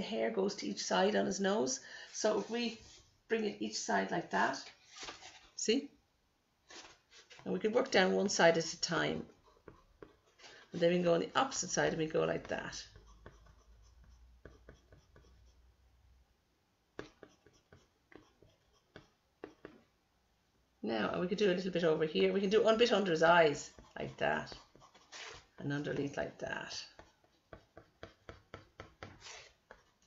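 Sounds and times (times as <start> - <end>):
pencil scratching on paper: 6.7 - 15.8, 17.0 - 19.9, 22.3 - 30.0.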